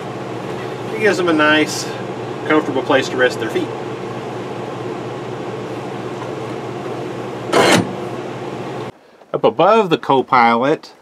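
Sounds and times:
machine hum: 0.0 - 9.0.

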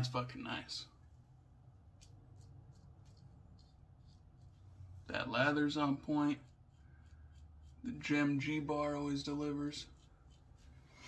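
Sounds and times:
low room hum: 0.0 - 11.0
razor scraping whiskers: 1.8 - 11.0.

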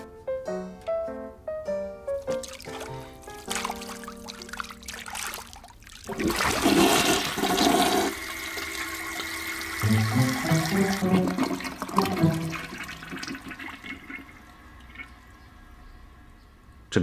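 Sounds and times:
soft background music: 0.0 - 5.8, 8.0 - 13.2
toilet flushing: 2.3 - 16.4.

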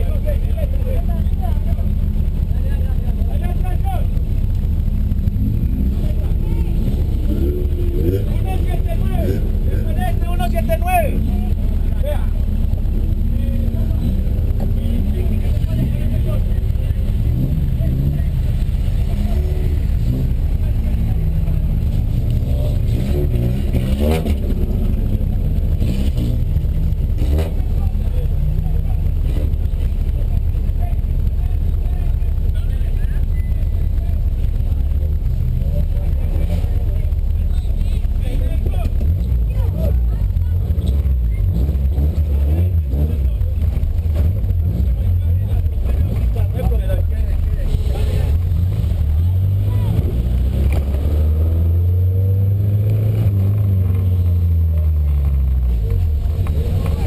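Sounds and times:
car engine idling: 0.0 - 57.0
indistinct voices: 0.0 - 57.0.

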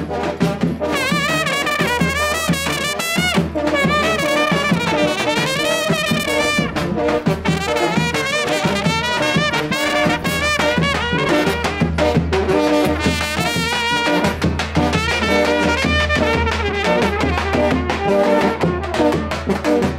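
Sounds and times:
drum beats: 0.0 - 19.9
low brass horns: 0.0 - 19.9
trumpets playing vibrato melody: 0.0 - 19.9.

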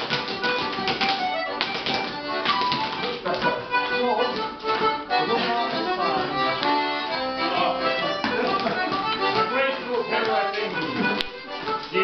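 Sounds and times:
hard shoes tapping on wooden floor: 0.0 - 12.0.

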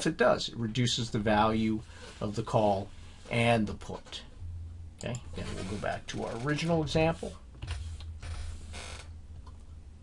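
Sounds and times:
low hum: 0.5 - 10.0.

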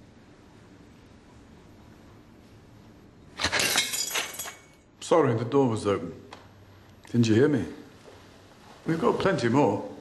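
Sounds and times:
glass pieces tinkling: 3.4 - 4.8
glass shattering: 3.4 - 4.8.

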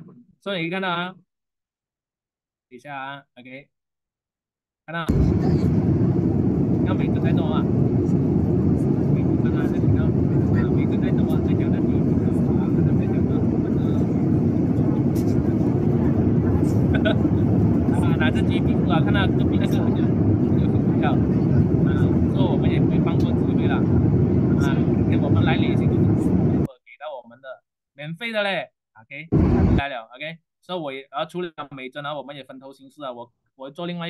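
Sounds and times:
low roar of engines and air: 5.1 - 26.7, 29.3 - 29.8
passengers talking faintly: 5.1 - 26.7.

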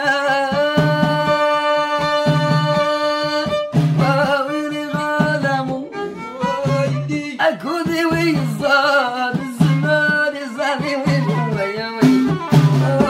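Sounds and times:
bowed violin melody: 0.0 - 13.0
frame drum with jingles: 0.0 - 13.0.

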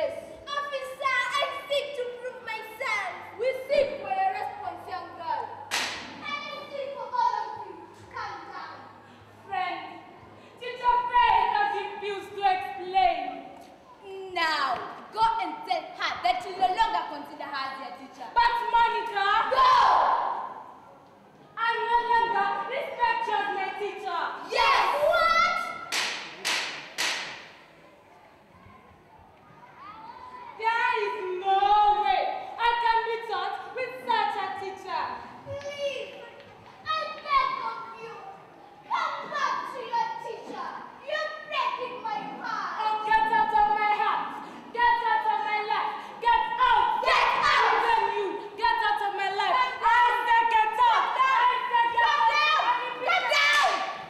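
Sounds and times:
children chattering and calling: 0.0 - 26.5, 27.5 - 54.0
hand claps echoing in hall: 5.6 - 6.5, 25.4 - 27.8, 53.4 - 54.0.

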